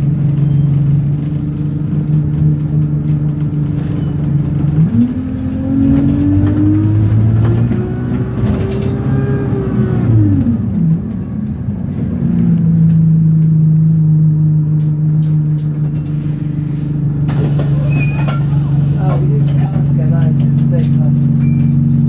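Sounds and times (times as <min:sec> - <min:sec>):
bus engine accelerating: 0:00.0 - 0:22.0.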